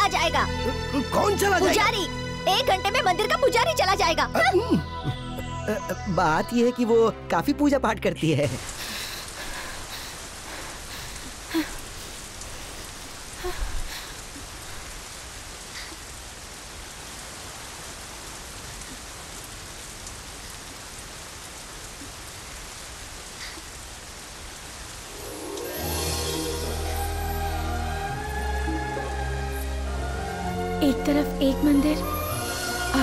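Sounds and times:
rain falling on stone: 0:00.0 - 0:04.5, 0:08.4 - 0:33.0
music: 0:00.0 - 0:09.2, 0:25.1 - 0:33.0.

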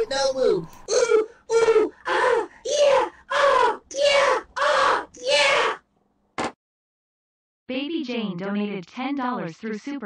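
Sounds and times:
person whooping: 0:00.9 - 0:05.8.

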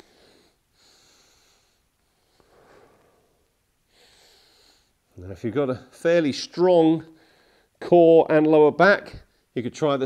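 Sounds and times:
man breathing with exertion: 0:00.0 - 0:05.0.

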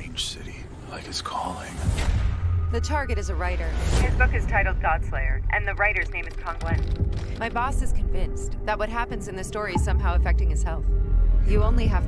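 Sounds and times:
low rumbling film score: 0:00.0 - 0:12.0.

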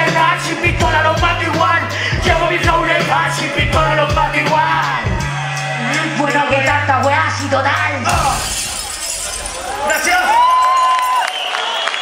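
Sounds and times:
hip hop beat over speakers: 0:00.0 - 0:08.0
deep bass line: 0:00.0 - 0:09.9
crowd noise and voices: 0:00.0 - 0:12.0.

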